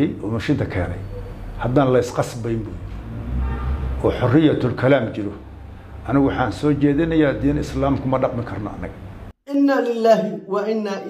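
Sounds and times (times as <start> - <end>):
man talking: 0.0 - 2.8, 4.0 - 5.4, 6.0 - 9.0.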